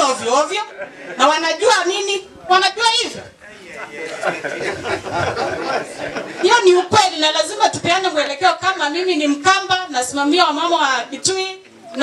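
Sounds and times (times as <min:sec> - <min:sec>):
woman talking into microphone: 0:00.0 - 0:03.3, 0:06.4 - 0:12.0.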